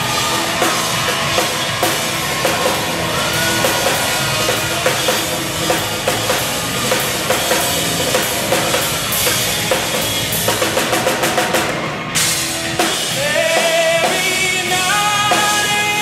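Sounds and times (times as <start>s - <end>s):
drum kit playing a steady beat: 0.0s - 16.0s.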